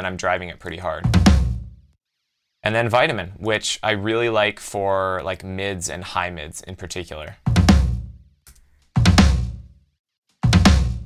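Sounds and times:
floor tom boom: 1.1s - 1.8s, 10.4s - 11.0s.

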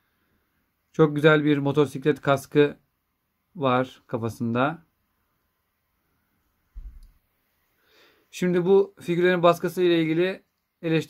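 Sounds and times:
brief low thump: 6.8s - 7.2s.

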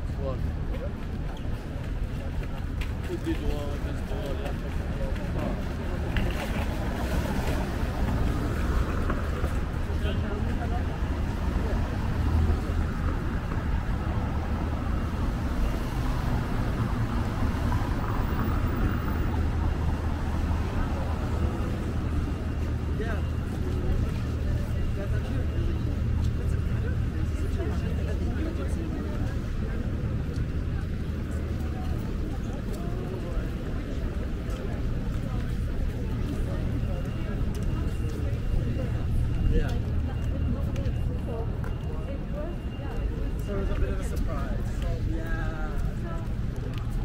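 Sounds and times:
car traffic rumble: 0.0s - 47.0s
passers-by talking: 0.0s - 47.0s.

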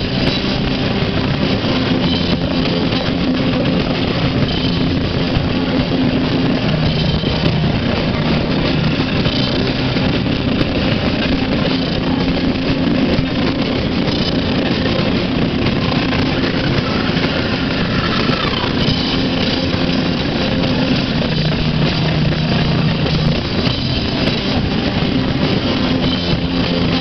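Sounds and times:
live rock band playing: 0.0s - 27.0s.

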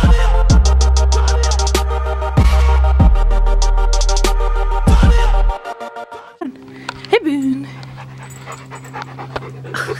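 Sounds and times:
dog panting: 7.3s - 9.9s.

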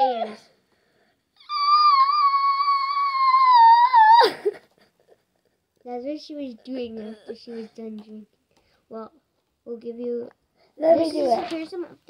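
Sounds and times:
girl squealing high note: 1.4s - 4.4s.

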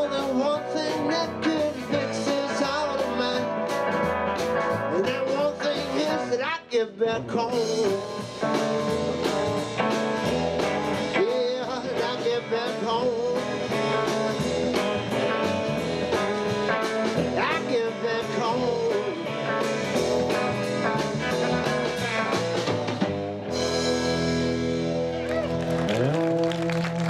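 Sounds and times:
man singing: 0.0s - 3.9s, 4.7s - 8.6s, 11.0s - 14.5s, 16.0s - 22.6s
drums: 0.0s - 27.0s
electric bass: 0.0s - 27.0s
electric guitar: 0.0s - 27.0s.

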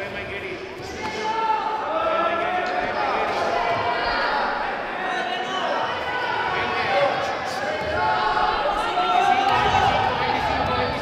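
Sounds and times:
people shouting: 0.8s - 11.0s.

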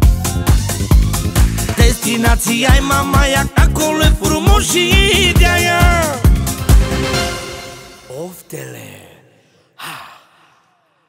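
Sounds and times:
song ending in reverb: 0.0s - 8.2s
breathy vocal gasp: 9.3s - 11.0s.

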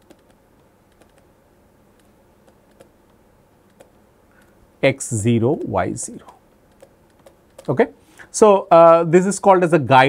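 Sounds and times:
stylus tapping on tablet: 0.0s - 1.3s, 6.7s - 7.7s
low steady hiss: 0.0s - 10.0s.

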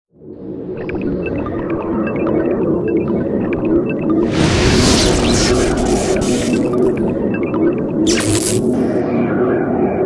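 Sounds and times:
high-pitched beeps and blips: 4.0s - 8.8s
low rumbling electronic drone: 4.1s - 9.9s.

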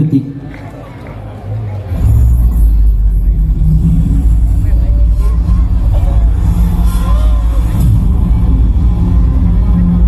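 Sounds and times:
deep bass rumble from speakers: 1.9s - 10.0s.

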